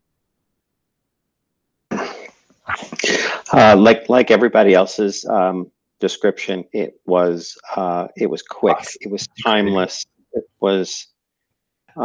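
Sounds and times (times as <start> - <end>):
man coughing: 1.9 - 3.5
person speaking: 1.9 - 11.0.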